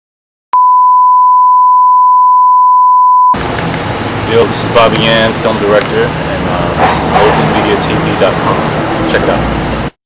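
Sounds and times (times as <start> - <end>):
steady test tone: 0.6 - 9.9.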